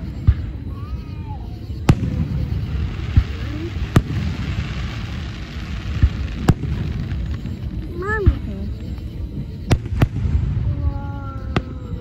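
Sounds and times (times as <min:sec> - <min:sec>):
fireworks bursting: 0:00.0 - 0:12.0.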